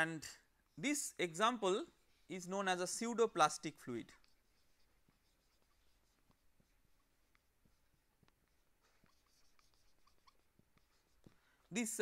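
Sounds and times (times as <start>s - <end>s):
marker writing on whiteboard: 0.5s - 12.0s.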